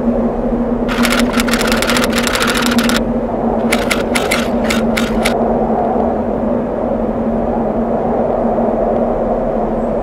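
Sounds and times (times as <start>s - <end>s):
steady low hum: 0.0s - 10.0s
typewriter clicking sound effect: 0.9s - 3.0s, 3.6s - 5.4s.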